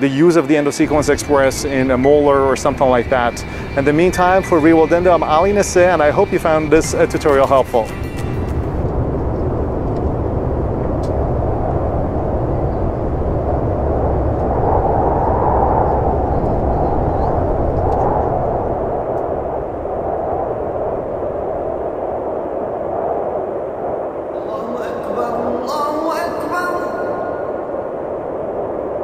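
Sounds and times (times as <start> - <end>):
jet airliner cabin roar: 0.0 - 22.2, 24.3 - 29.0.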